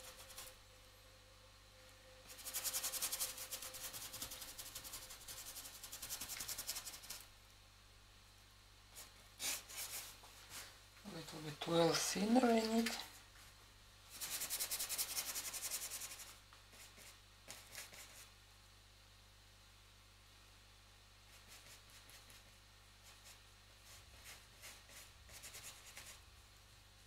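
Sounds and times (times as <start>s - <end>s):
paintbrush scratching on board: 0.0s - 0.6s, 2.3s - 7.2s, 14.1s - 18.3s, 21.3s - 26.2s.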